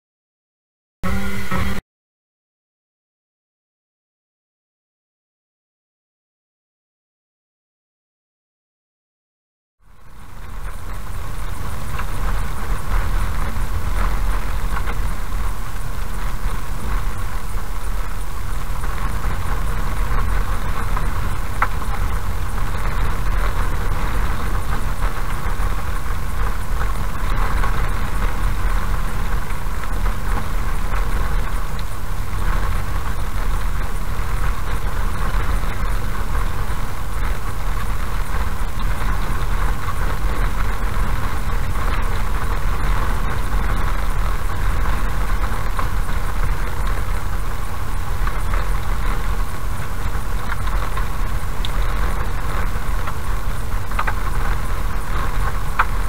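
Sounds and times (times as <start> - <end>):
car engine and tyre noise: 9.8 - 56.0
faint ticks: 53.9 - 56.0.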